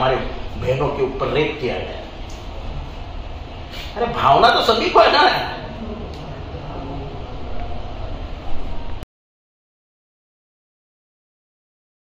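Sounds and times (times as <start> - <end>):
low rumbling background noise: 0.0 - 9.0.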